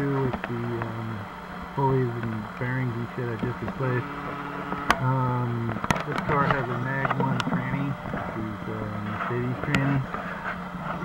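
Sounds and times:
man's muffled hesitation sound: 4.9 - 10.1.

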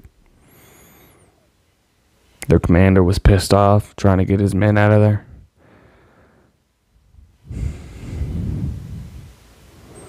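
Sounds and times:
heavy exhale into microphone: 0.4 - 1.4, 7.4 - 10.0.

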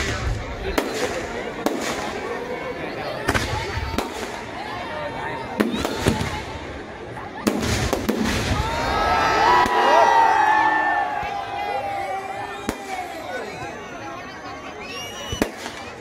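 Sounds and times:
fireworks bangs: 0.0 - 2.5, 5.5 - 6.8, 7.4 - 8.9, 12.6 - 13.2, 15.2 - 16.0.

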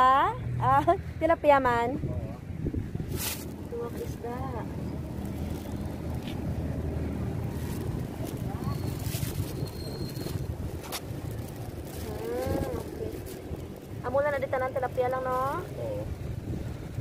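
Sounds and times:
plastic bags crinkling: 3.2 - 6.6, 7.3 - 15.8.

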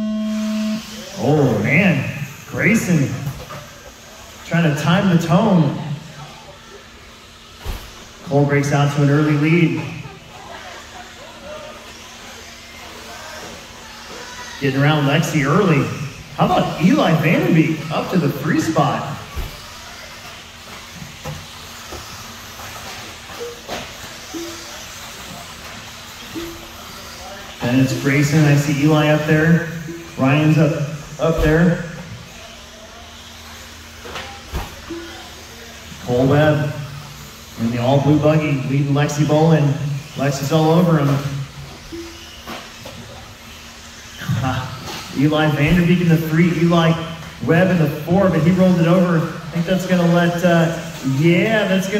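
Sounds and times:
faint hum: 0.0 - 7.1
remote control cars racing: 0.0 - 51.9
steady hiss: 0.6 - 51.9.

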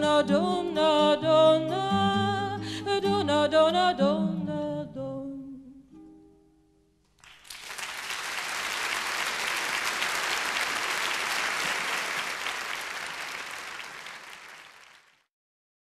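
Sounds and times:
audience applauding: 7.2 - 15.3.

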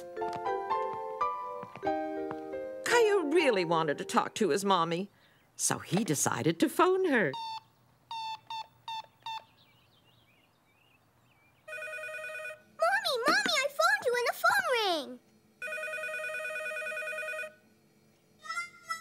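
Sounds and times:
telephone keypad beeps: 7.4 - 9.5
electronic telephone ringing: 11.7 - 12.6, 15.6 - 17.6.

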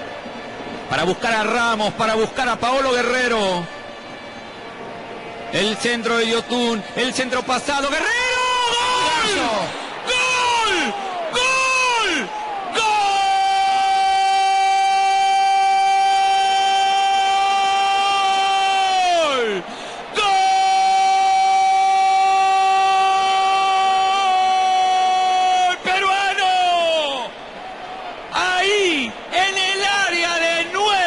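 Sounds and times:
commentator shouting goal: 5.6 - 27.3, 28.3 - 31.0.

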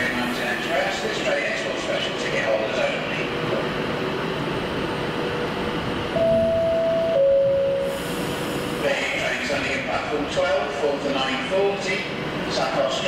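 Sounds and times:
electric locomotive rumbling: 0.0 - 13.0.

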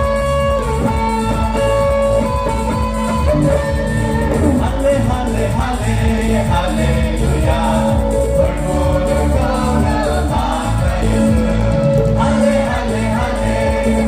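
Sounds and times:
amplified band with steady beat: 0.0 - 14.0
group singing through microphones: 0.0 - 14.0.

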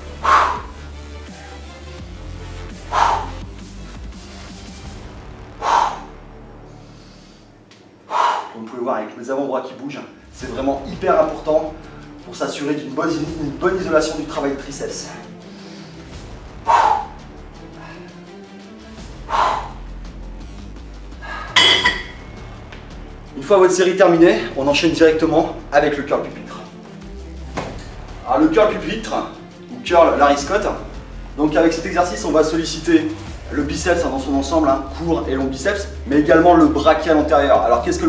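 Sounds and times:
background music with bass line: 0.0 - 7.7, 10.3 - 38.0
person exhaling sharply: 0.2 - 0.7, 2.9 - 3.4, 5.6 - 6.1, 8.1 - 8.6, 19.3 - 19.8
weight plates clanking: 21.6 - 22.3.

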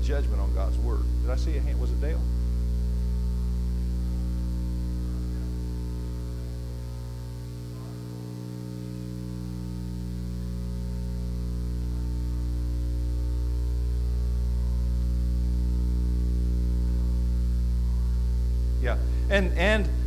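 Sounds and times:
electrical mains hum: 0.0 - 20.0.

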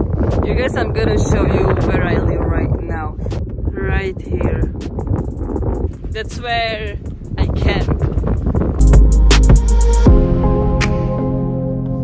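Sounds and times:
wind buffeting microphone: 0.0 - 10.7
background music with sustained notes: 8.8 - 12.0.

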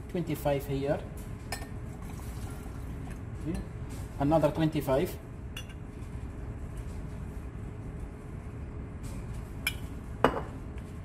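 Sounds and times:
glassware clink: 1.5 - 1.8, 5.6 - 5.8, 9.6 - 10.5.

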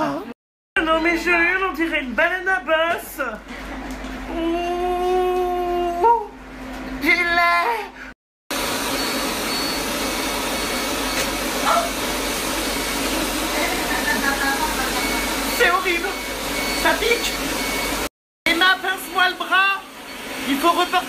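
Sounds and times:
cold air cooler blowing: 8.5 - 21.0.

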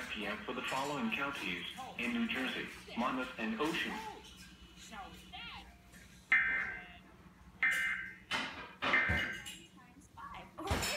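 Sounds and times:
cartoon soundtrack from television: 0.0 - 10.9.

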